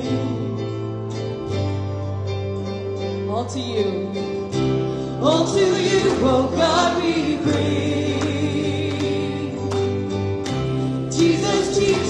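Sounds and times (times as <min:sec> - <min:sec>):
acoustic guitar: 0:00.0 - 0:12.0
sustained bass notes: 0:00.0 - 0:12.0
backing voices singing: 0:05.1 - 0:12.0.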